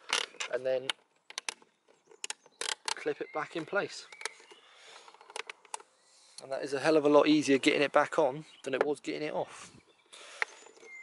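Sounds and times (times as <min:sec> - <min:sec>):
plastic clips snapping: 0:00.1 - 0:03.1.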